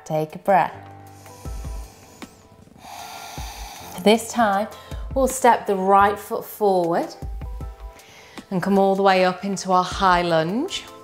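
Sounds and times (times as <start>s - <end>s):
soft background music: 0.0s - 11.0s
hissing breath: 0.9s - 5.1s, 7.9s - 8.5s
woman breathing: 0.9s - 5.2s, 7.7s - 8.5s.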